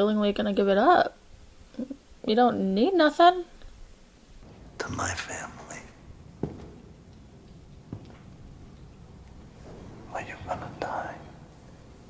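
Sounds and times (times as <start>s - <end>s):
person whispering: 4.8s - 6.0s, 10.1s - 11.4s.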